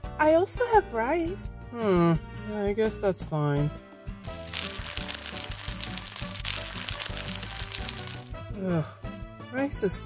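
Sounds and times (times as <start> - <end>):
background music: 0.0 - 10.0
steady crackling hiss: 4.4 - 8.3.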